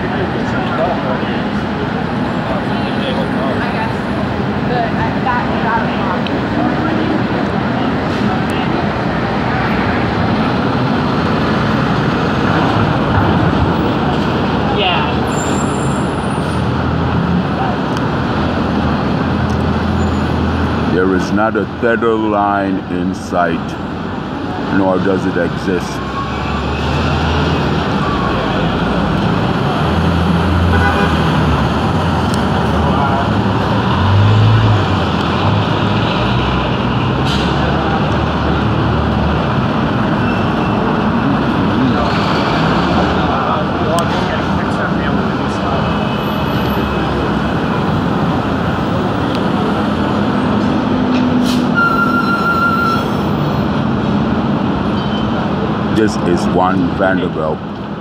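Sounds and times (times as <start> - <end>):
construction site din: 0.0 - 58.0
street traffic: 0.0 - 58.0.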